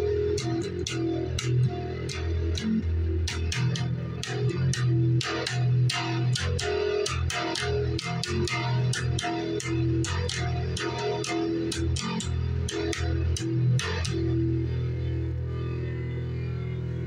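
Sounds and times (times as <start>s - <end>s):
bass guitar plucked notes: 0.0s - 17.0s.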